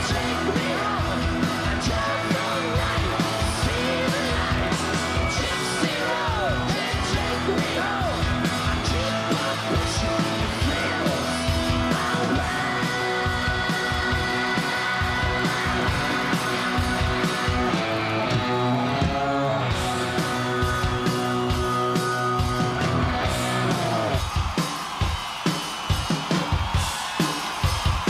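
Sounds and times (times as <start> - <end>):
drums and cymbals: 0.0 - 28.0.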